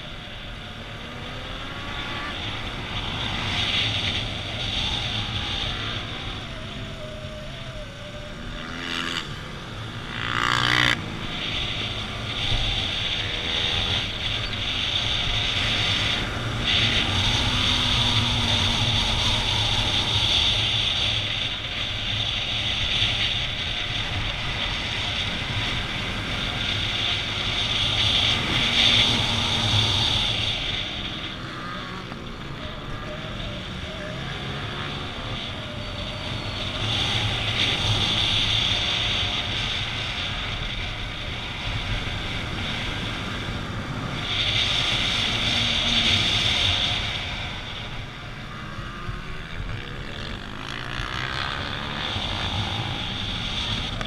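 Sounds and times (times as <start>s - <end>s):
motorcycle engine revving: 0.0s - 54.0s
wind rushing over microphone: 0.0s - 54.0s.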